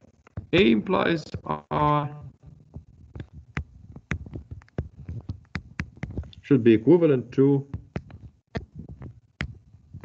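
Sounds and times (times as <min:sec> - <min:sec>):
faint low hum: 0:00.0 - 0:10.0
pen clicks and taps on whiteboard: 0:02.8 - 0:06.4, 0:07.7 - 0:09.7.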